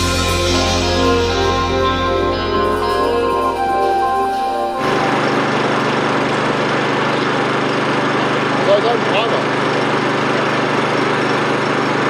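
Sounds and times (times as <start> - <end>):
background music: 0.0 - 5.6
small engine running: 0.0 - 12.0.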